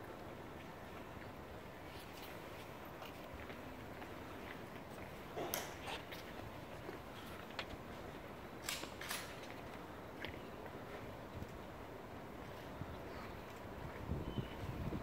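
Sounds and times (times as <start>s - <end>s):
hushed crowd ambience: 0.0s - 15.0s.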